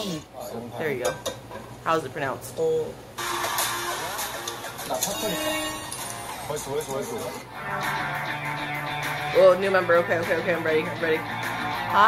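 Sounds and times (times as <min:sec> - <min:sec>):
background music: 0:03.2 - 0:12.0.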